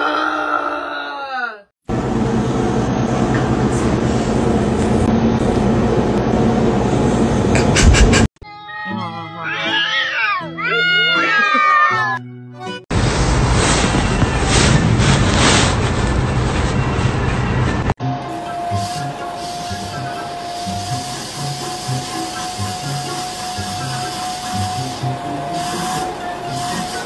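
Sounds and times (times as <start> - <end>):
music: 8.4 - 12.9, 18.0 - 27.0
cats caterwauling: 8.6 - 12.2.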